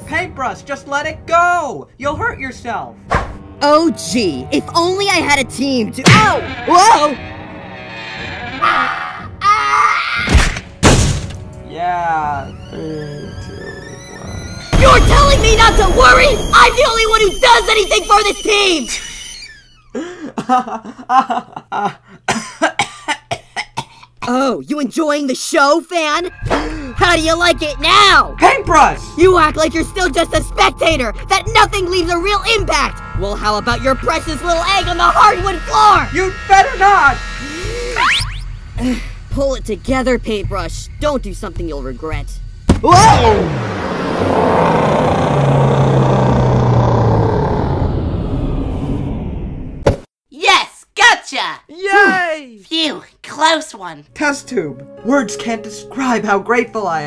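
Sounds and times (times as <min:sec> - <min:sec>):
loud rumbling roar: 0:43.1 - 0:49.8.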